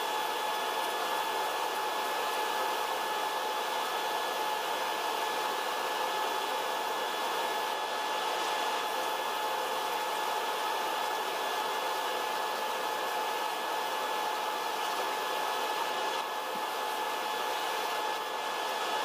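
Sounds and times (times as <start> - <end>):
ventilation fans running: 0.0 - 19.0.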